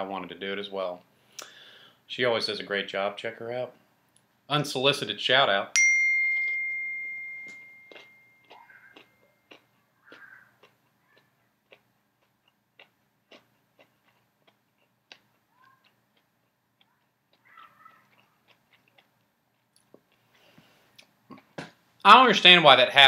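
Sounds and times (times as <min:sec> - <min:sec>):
phone notification chime: 0:05.8 - 0:08.4
person chewing crispy food: 0:07.8 - 0:21.6.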